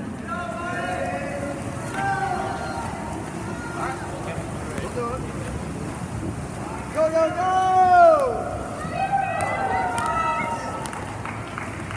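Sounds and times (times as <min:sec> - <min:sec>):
hubbub of spectators: 0:00.0 - 0:11.9
swimmers splashing: 0:00.0 - 0:11.9.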